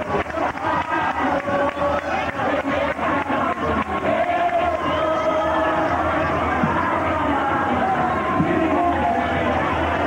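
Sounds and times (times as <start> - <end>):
many voices singing: 0.0 - 10.0.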